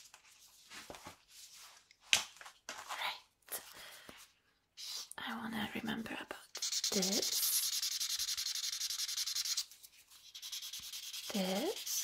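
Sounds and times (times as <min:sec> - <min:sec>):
marker scribbling on paper: 0:06.5 - 0:12.0.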